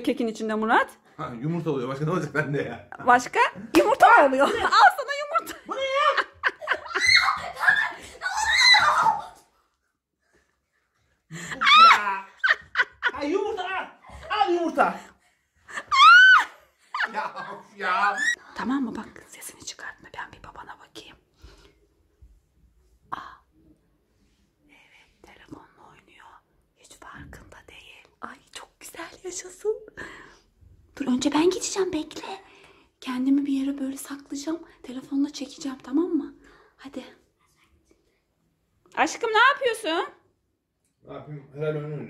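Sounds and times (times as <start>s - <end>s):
people laughing and shrieking: 5.7s - 9.5s, 11.5s - 13.1s, 15.8s - 17.2s.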